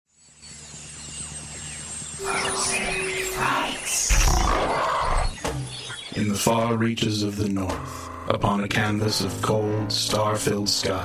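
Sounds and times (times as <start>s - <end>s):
low droning tone: 2.2s - 4.9s.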